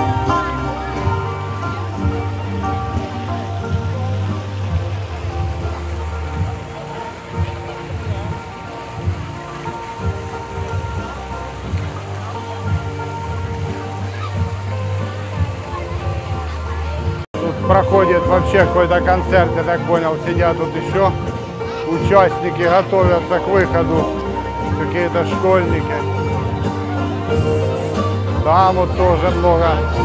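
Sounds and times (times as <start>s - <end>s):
fountain water splashing: 0.0s - 30.0s
live music: 0.0s - 30.0s.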